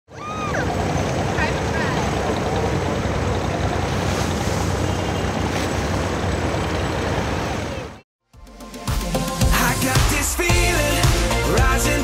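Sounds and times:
boat engine running: 0.1 - 8.0
water rushing along hull: 0.1 - 8.0.

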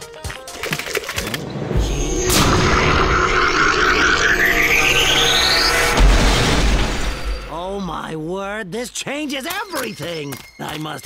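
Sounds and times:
low rumble: 1.4 - 8.0
whistle tone climbing in pitch: 1.7 - 6.0.

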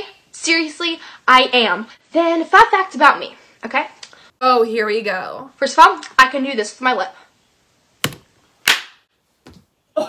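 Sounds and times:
sharp hand smacks: 8.0 - 9.0.

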